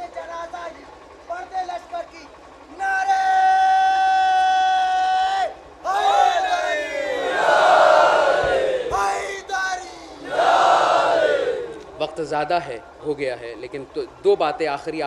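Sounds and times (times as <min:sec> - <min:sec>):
man shouting: 0:02.7 - 0:07.2, 0:08.9 - 0:10.2
crowd of men shouting in unison: 0:03.5 - 0:09.5, 0:10.1 - 0:11.8.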